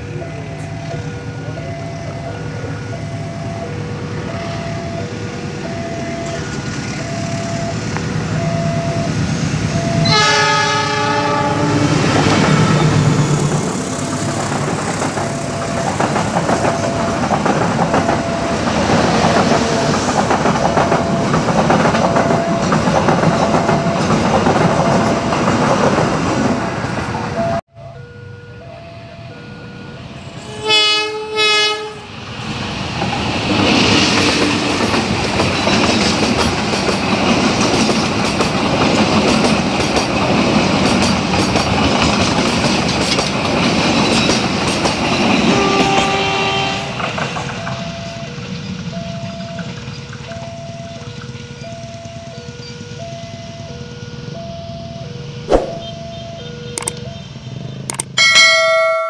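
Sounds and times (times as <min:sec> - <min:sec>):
two-tone crossing alarm: 0:00.0 - 0:25.7, 0:27.2 - 0:32.0, 0:45.2 - 0:59.0
train coaches rolling past: 0:00.0 - 0:59.0
train horn blasts: 0:09.9 - 0:13.4, 0:30.4 - 0:32.1, 0:45.4 - 0:47.0.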